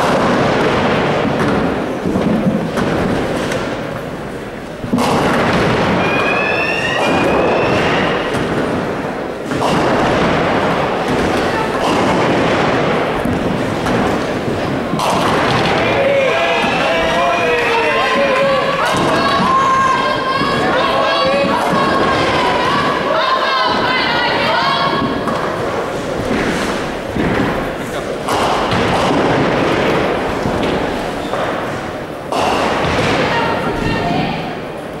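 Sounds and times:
bowling balls thudding and rolling: 0.0s - 35.0s
hubbub of spectators' voices: 0.0s - 35.0s.

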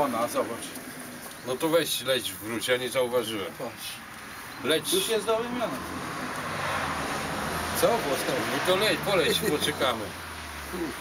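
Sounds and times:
road noise of passing vehicle: 0.0s - 11.0s.

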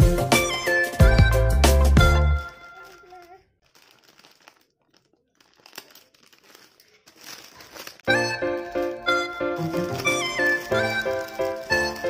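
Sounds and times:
background music: 0.0s - 2.6s, 8.1s - 12.0s
plastic bag rustling: 2.4s - 12.0s.

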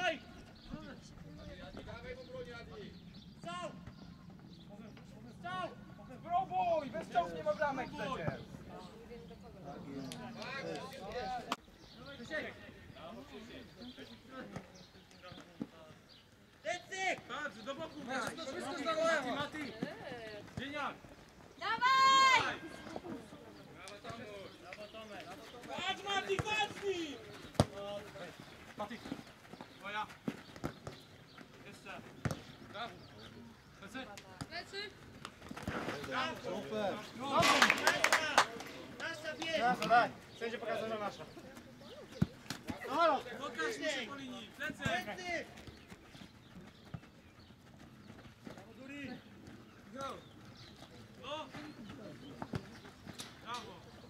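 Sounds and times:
players shouting: 21.6s - 23.3s, 25.0s - 28.9s, 35.8s - 45.5s.

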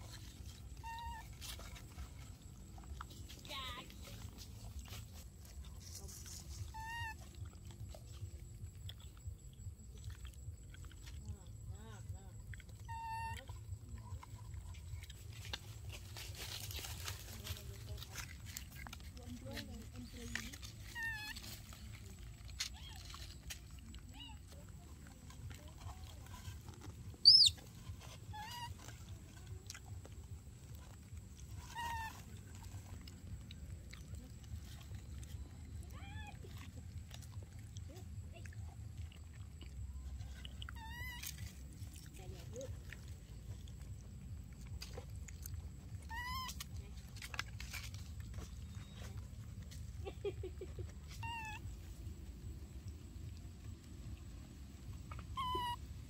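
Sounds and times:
baby monkeys squeaking and cooing: 0.0s - 56.0s
shrill monkey squeal: 0.8s - 1.3s, 6.6s - 7.3s, 12.8s - 13.5s, 27.2s - 29.0s, 31.6s - 32.3s, 40.8s - 41.5s, 46.0s - 46.6s, 51.1s - 51.6s, 55.2s - 55.9s.

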